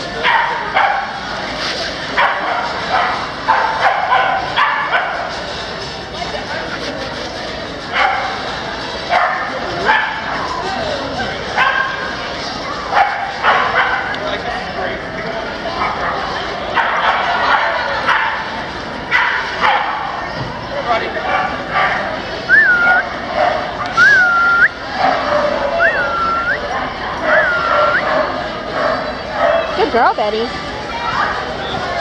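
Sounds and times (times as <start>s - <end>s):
people talking: 0.0s - 32.0s
dogs barking and yipping: 0.2s - 1.4s, 2.0s - 6.0s, 7.8s - 14.4s, 15.6s - 20.4s, 21.1s - 30.2s.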